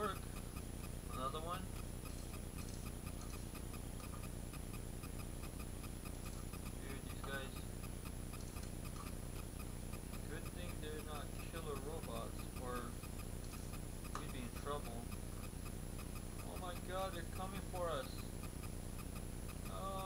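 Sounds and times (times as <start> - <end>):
person speaking: 0.0 - 0.3, 1.1 - 1.8, 6.7 - 7.7, 10.2 - 13.0, 14.1 - 15.2, 16.4 - 18.3, 19.7 - 20.0
clockwork toy robots ticking: 0.0 - 20.0.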